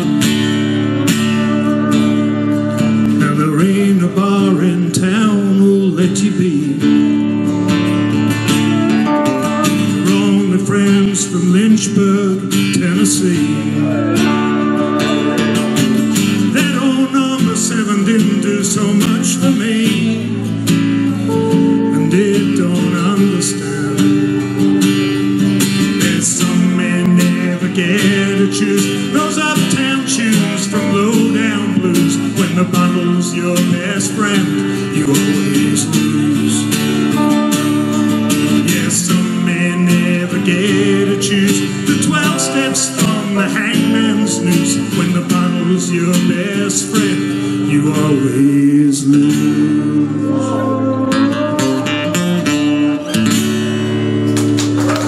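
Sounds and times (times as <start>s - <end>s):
steel guitar sliding lead lines: 0.0s - 48.5s, 49.1s - 55.0s
strummed acoustic guitar: 0.0s - 55.0s.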